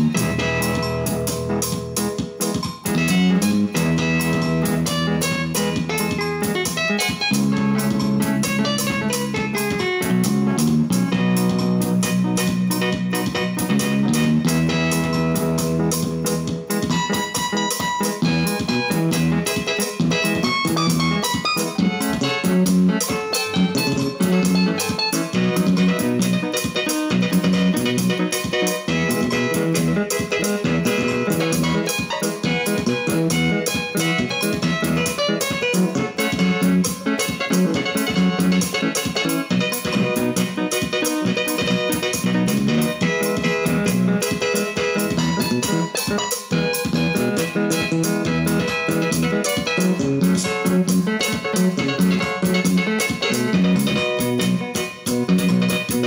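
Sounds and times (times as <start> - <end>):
bass line: 0.0 - 56.0
keyboard melody: 0.0 - 56.0
steady drum beat: 0.0 - 56.0.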